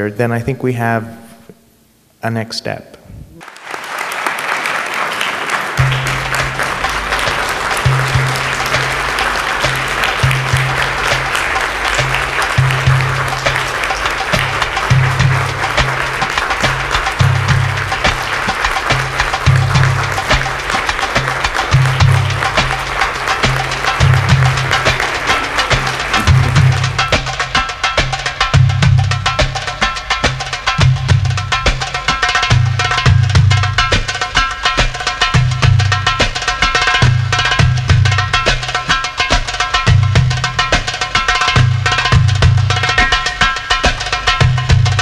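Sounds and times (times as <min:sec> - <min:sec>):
audience applauding: 0:03.4 - 0:28.7
music with bass and percussion: 0:05.8 - 0:45.0.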